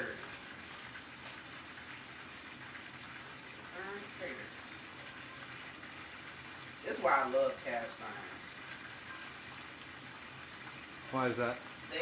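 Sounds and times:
food hissing in a skillet: 0:00.0 - 0:12.0.

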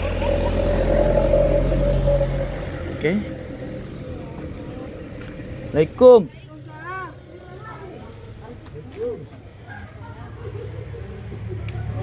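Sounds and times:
engine hum: 0:00.0 - 0:12.0.

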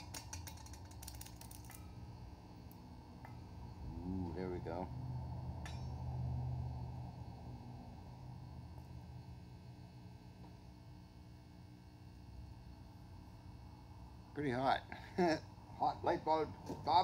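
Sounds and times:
low electrical hum: 0:00.0 - 0:17.0.

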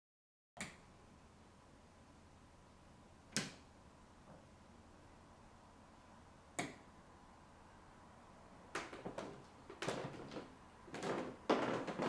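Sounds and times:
sharp click: 0:03.3 - 0:03.6.

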